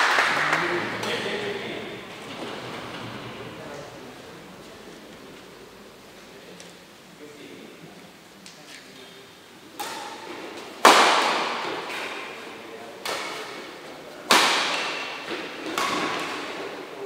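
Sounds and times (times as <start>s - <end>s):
rackets hitting shuttlecock: 9.8s - 12.4s, 13.0s - 17.0s.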